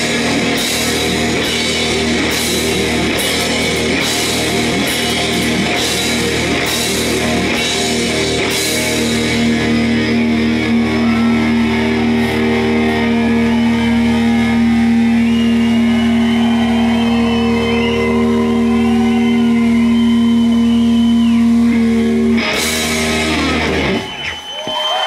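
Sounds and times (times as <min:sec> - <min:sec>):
lead guitar high bends: 0:00.0 - 0:24.4.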